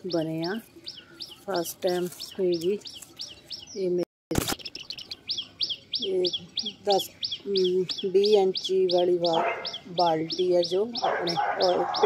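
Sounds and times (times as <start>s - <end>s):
small bird chirping: 0.0s - 12.0s
sharp click: 4.3s - 4.7s.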